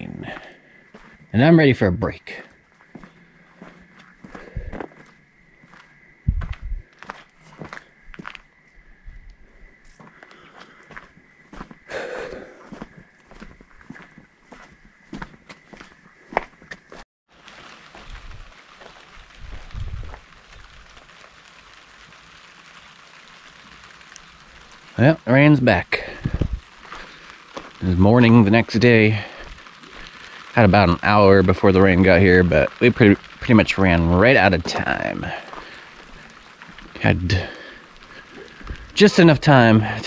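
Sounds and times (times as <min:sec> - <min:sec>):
light rain hiss: 0:00.0 - 0:40.0
footsteps on dirt and gravel: 0:00.2 - 0:01.4, 0:02.5 - 0:08.9, 0:09.7 - 0:21.2, 0:25.8 - 0:31.4, 0:32.0 - 0:40.0
plastic tarp rustling: 0:17.3 - 0:40.0.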